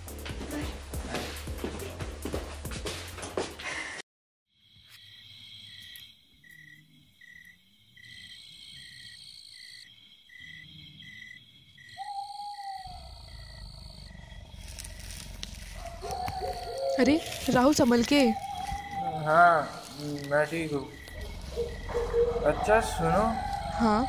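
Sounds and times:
crickets chirping: 4.5 - 24.0
high insect trill: 4.6 - 24.0
long hoot: 12.0 - 13.4, 15.7 - 17.5, 18.2 - 20.0, 21.2 - 24.0
low rumble: 13.0 - 16.0, 21.0 - 24.0.

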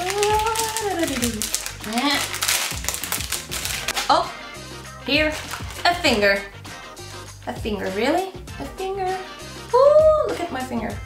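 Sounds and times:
plastic candy wrapper crinkling: 0.0 - 4.4, 5.1 - 6.4
background music: 0.0 - 11.0.

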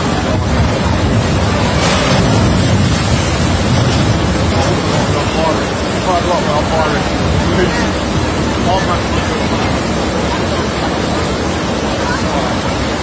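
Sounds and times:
low rumble: 0.0 - 9.1
distant voices: 0.0 - 13.0
water rushing: 0.0 - 13.0.

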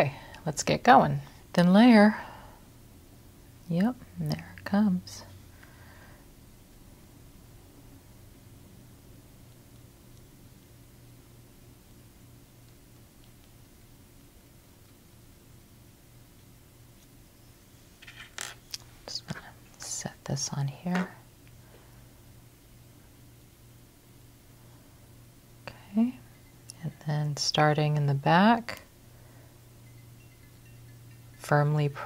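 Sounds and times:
low steady hum: 0.0 - 32.0
faint high-pitched tones: 29.2 - 32.0.

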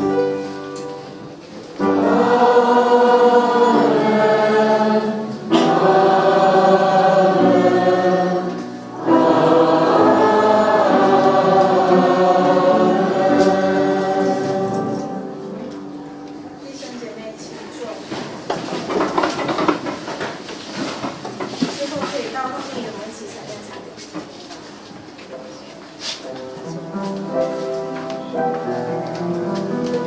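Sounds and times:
congregation singing a hymn: 0.0 - 16.2.

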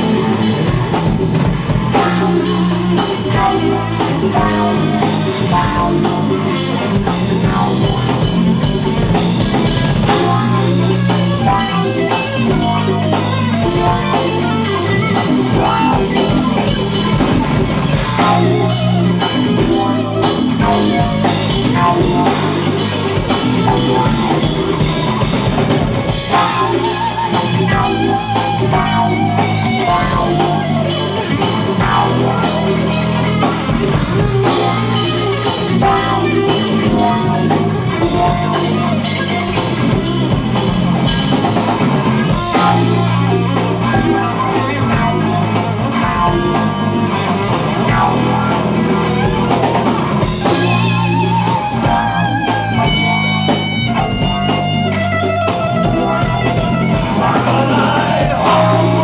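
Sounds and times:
guitar lead with vibrato: 0.0 - 59.0
live rock band playing: 0.0 - 59.0.

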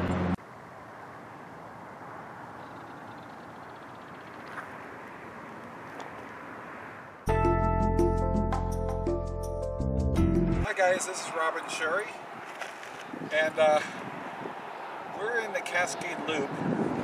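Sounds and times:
faint outdoor ambient noise: 0.4 - 7.3
background music with sustained notes: 7.3 - 10.7.

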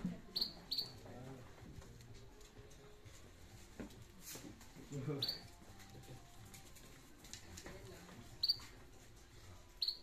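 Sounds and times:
small bird chirping: 0.3 - 1.0, 5.2 - 5.6, 8.4 - 8.7, 9.8 - 10.0.

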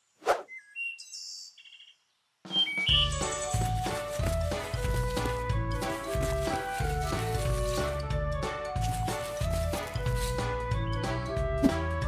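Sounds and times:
lively melody with bass and beat: 3.0 - 12.0.

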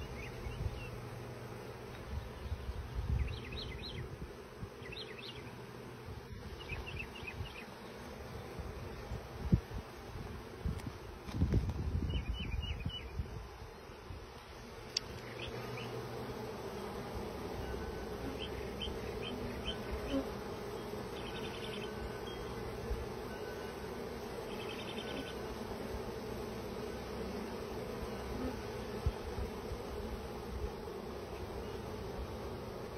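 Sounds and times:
bees buzzing: 0.0 - 32.9.

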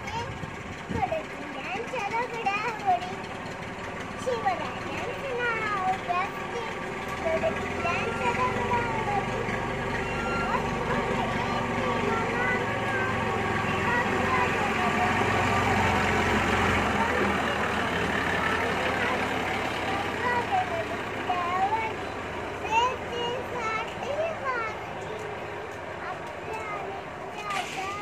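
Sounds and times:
child's voice: 0.0 - 3.4, 4.1 - 22.0, 22.6 - 28.0
tractor engine running: 0.0 - 28.0.

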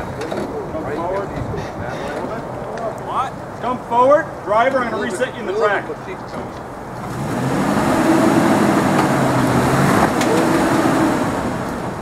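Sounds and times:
engine revving under load: 6.9 - 12.0.

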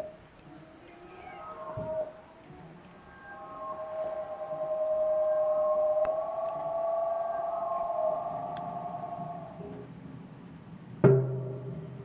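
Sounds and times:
faint clicks: 6.0 - 6.8, 8.5 - 8.8.

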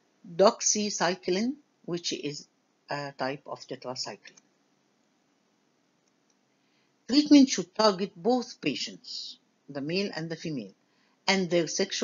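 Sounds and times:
faint room hiss: 0.0 - 12.0
faint clicks: 6.0 - 6.6.

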